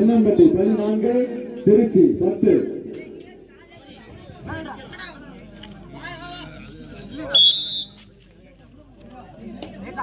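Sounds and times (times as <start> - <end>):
shrill whistle blast: 7.4 - 8.0.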